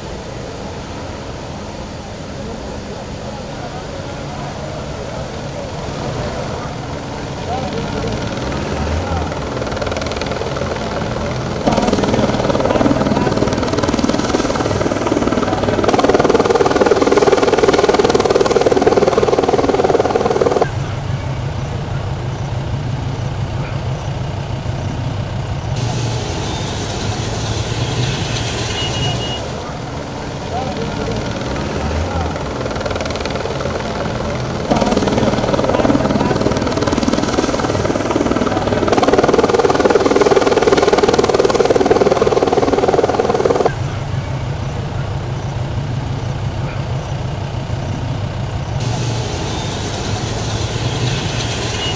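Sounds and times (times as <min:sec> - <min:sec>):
helicopter rotor and engine: 0:00.0 - 0:51.9
people's voices: 0:00.0 - 0:51.9
steady low beat: 0:11.4 - 0:20.2, 0:34.5 - 0:43.1.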